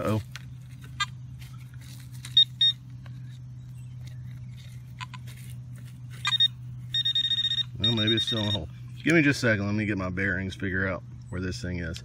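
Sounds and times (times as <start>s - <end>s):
steady low hum: 0.0s - 12.0s
pinpointer short high beeps: 6.2s - 8.7s.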